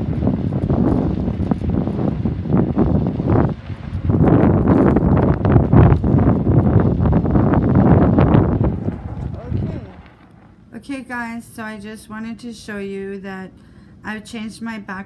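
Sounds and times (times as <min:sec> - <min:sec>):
strong wind buffeting microphone: 0:00.0 - 0:10.3.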